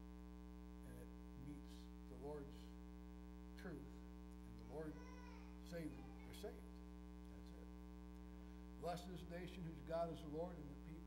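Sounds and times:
faint mains hum: 0:00.0 - 0:11.0.

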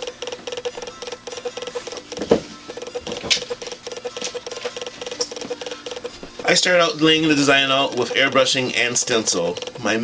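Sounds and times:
light regular ticking: 0:00.0 - 0:10.0.

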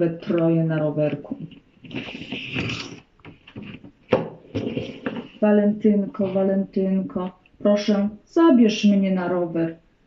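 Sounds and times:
paper card rustling: 0:00.2 - 0:05.4.

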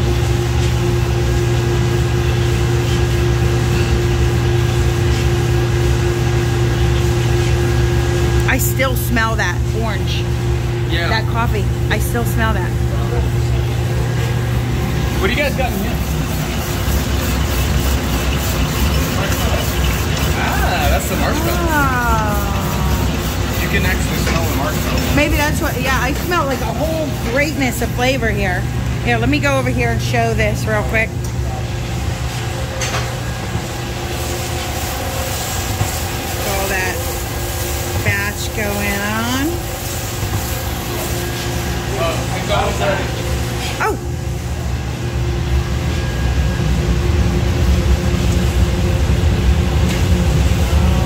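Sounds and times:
coffee roaster drone: 0:00.0 - 0:51.0
voices: 0:10.9 - 0:16.3, 0:18.8 - 0:31.7, 0:36.4 - 0:37.1, 0:38.0 - 0:39.7.

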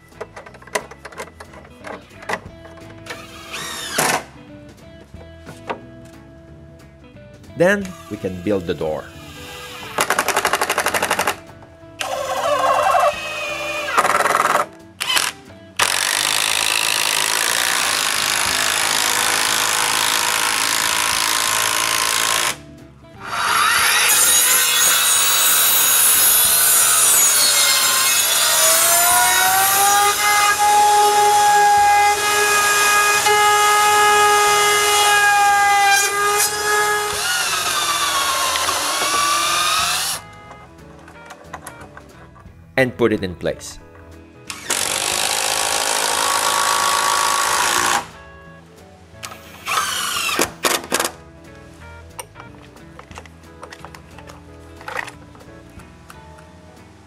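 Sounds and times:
cordless drill driving screws: 0:03.1 - 0:04.2, 0:12.0 - 0:22.6, 0:23.2 - 0:40.3, 0:44.5 - 0:48.1, 0:49.3 - 0:51.0.

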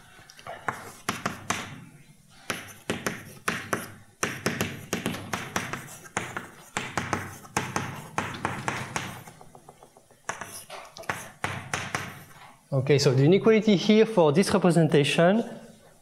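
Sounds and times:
chalk tapping and scratching: 0:00.5 - 0:01.8, 0:02.4 - 0:12.4.

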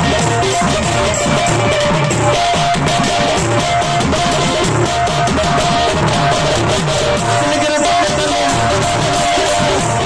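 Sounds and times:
folk music over loudspeakers: 0:00.0 - 0:10.0
hand drum strokes: 0:00.0 - 0:10.0.

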